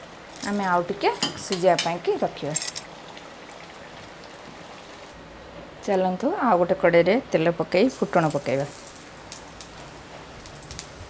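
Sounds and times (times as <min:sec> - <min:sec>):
seeds sizzling in hot oil: 0:00.0 - 0:05.2, 0:07.7 - 0:11.0
crackling pops: 0:08.3 - 0:11.0.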